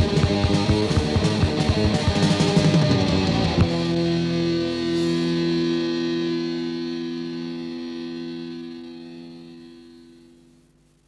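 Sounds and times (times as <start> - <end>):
distorted electric guitar chord: 0.0 - 10.7.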